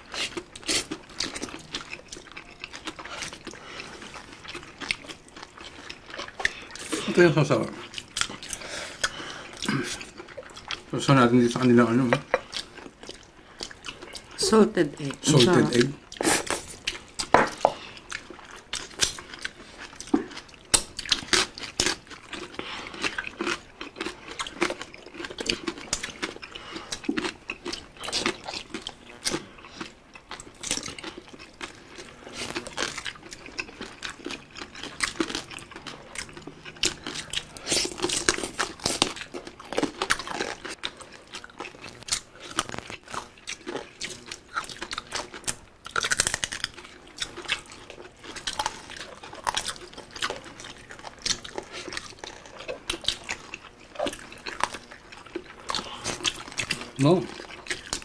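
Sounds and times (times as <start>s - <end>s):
wet chewing: 0.0s - 58.0s
crunching crispy food: 17.9s - 58.0s.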